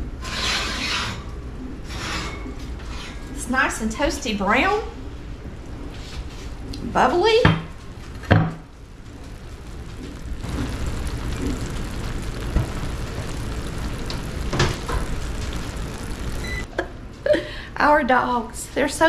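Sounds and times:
food sizzling and bubbling: 4.6 - 17.0.

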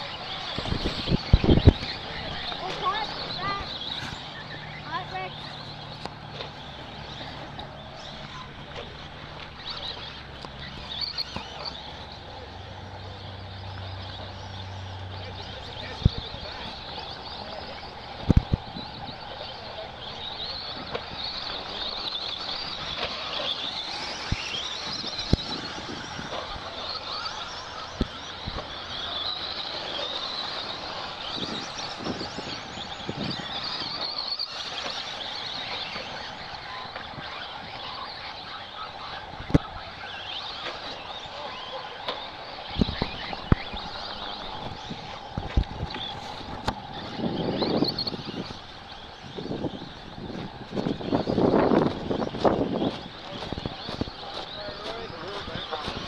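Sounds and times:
rc truck motor whine: 0.0 - 56.0.

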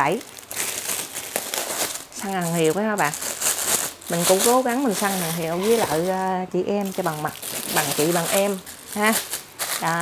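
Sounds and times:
plastic wrapping crinkling: 0.0 - 10.0.

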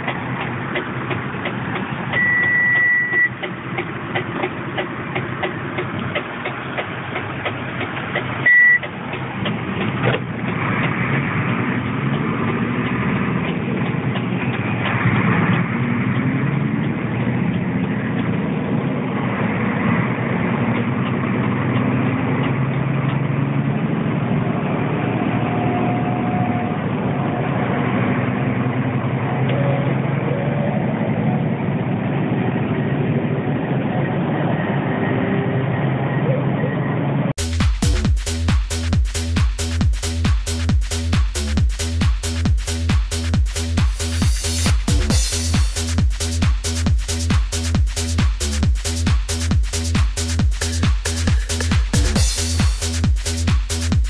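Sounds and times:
truck diesel engine pulling away: 0.0 - 54.0
loud high beep: 2.2 - 3.4, 8.4 - 8.8.

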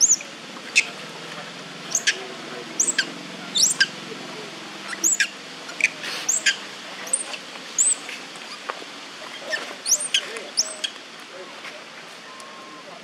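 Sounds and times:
high-pitched squeaky chirps: 0.0 - 0.9, 1.9 - 2.2, 2.8 - 3.9, 4.9 - 8.6, 9.8 - 10.9.

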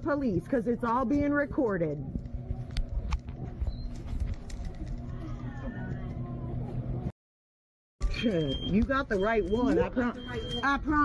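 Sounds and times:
low electrical hum: 0.0 - 7.1.

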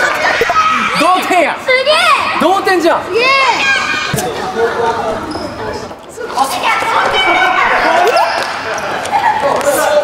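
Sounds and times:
voices shouting in a sports hall: 0.0 - 10.0.

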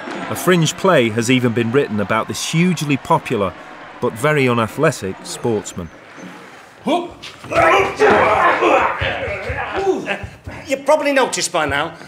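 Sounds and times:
voices and laughter: 4.8 - 10.7.

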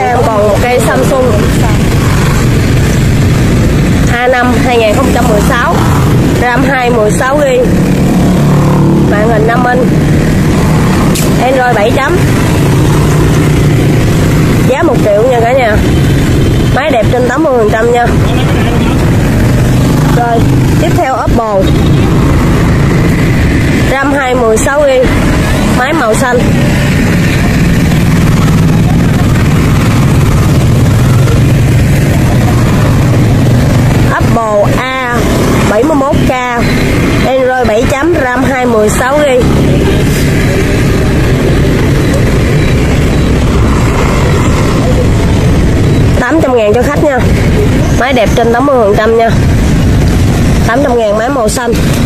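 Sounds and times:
loud low hum: 0.0 - 52.0
man speaking: 18.2 - 19.2.

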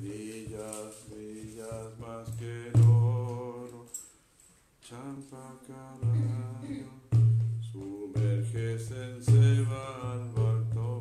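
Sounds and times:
hand drum strokes: 0.0 - 3.6, 6.0 - 11.0
person singing devotional chant: 0.0 - 4.0, 4.8 - 11.0.

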